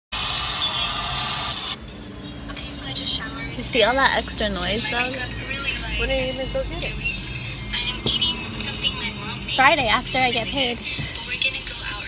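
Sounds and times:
traffic rushing: 0.1s - 12.0s.

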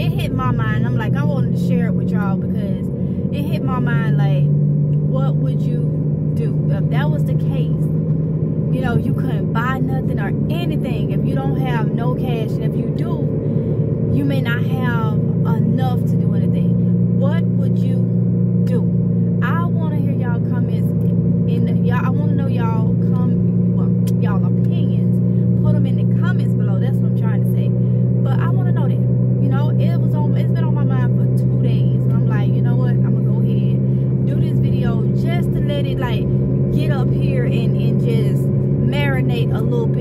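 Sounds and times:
woman talking: 0.0s - 7.9s, 8.7s - 13.3s, 14.1s - 40.0s
car engine hum: 0.0s - 40.0s.

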